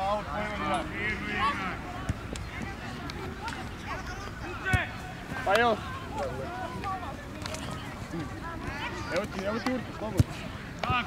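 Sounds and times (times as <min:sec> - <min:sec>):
people shouting outdoors: 0:00.0 - 0:07.3.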